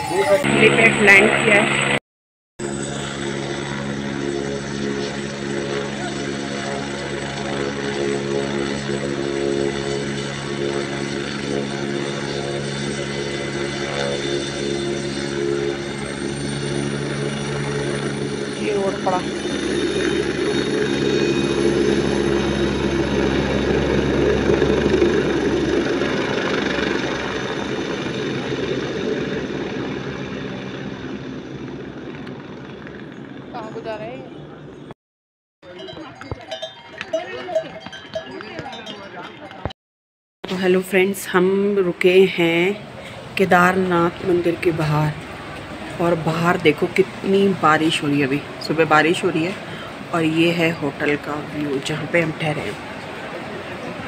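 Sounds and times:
helicopter engine and rotor: 0:00.0 - 0:02.0, 0:02.6 - 0:35.0, 0:40.4 - 0:54.0.

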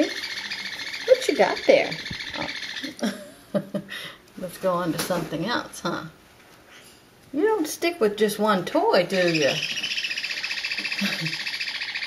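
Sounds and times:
parrot chattering: 0:00.0 - 0:03.0, 0:09.1 - 0:12.0.

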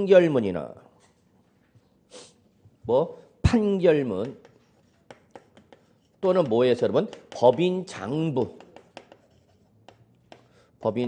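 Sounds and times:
chalk scratching on chalkboard: 0:03.8 - 0:11.0.

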